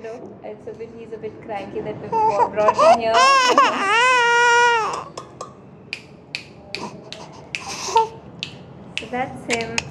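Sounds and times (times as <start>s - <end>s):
infant crying: 2.1s - 5.1s.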